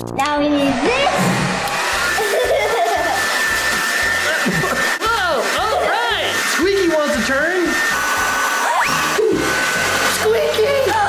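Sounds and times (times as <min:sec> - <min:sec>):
background music: 0:00.0 - 0:06.4
hair dryer blowing: 0:00.5 - 0:11.0
people laughing: 0:02.1 - 0:03.4, 0:04.2 - 0:05.0.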